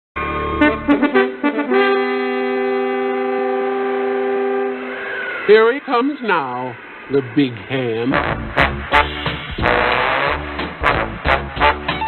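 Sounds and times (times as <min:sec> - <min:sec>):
brass section holding a chord: 0:00.2 - 0:05.4, 0:08.1 - 0:12.0.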